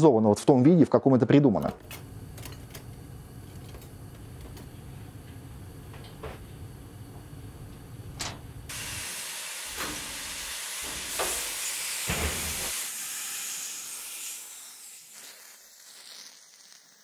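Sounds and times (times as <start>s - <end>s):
spraying hiss: 8.7s - 17.0s
heavy machine thumps: 12.1s - 12.6s.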